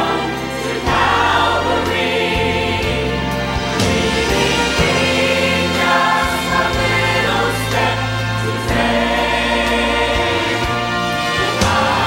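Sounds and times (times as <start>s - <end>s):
church choir singing a hymn: 0.0s - 12.0s
instrumental accompaniment: 0.0s - 12.0s.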